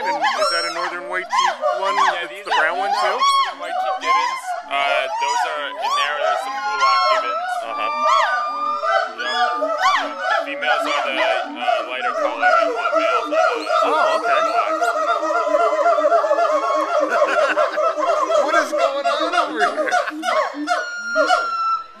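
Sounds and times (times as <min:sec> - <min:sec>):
gibbons whooping: 0:00.0 - 0:22.0.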